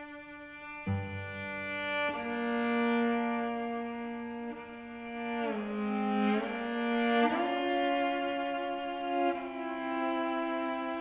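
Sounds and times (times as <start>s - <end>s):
cello sliding bowed notes: 0.0s - 11.0s.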